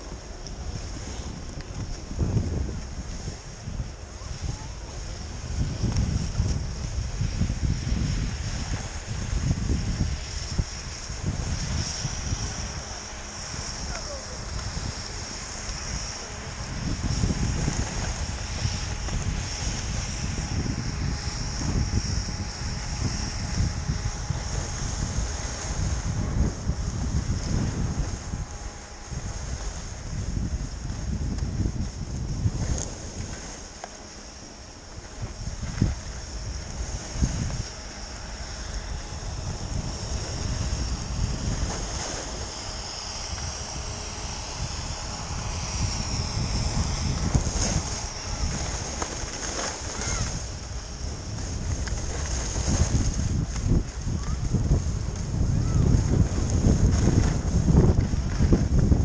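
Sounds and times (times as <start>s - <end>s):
sliding over packed snow: 0.0s - 59.0s
wind buffeting microphone: 0.0s - 59.0s.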